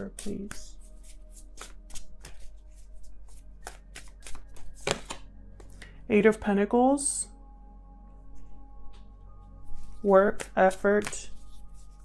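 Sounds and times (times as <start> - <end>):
cards being shuffled: 0.0 - 5.3.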